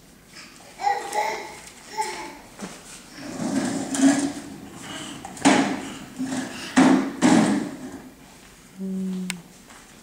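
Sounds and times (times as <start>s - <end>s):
plastic wheels rolling on wood floor: 0.8s - 8.1s.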